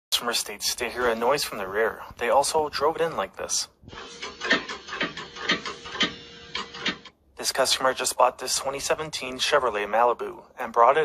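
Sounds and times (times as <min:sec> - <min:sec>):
repeating knocks: 0:04.1 - 0:07.1.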